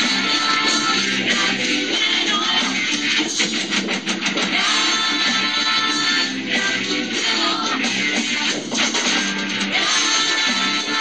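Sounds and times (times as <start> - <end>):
distorted electric guitar strumming: 0.0 - 11.0
drums: 0.0 - 11.0.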